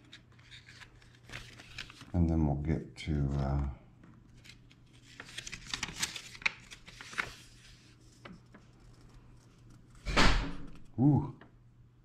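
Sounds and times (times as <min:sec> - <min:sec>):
paper rustling and crinkling: 0:00.0 - 0:02.3, 0:03.2 - 0:10.9
person muttering: 0:11.0 - 0:11.4.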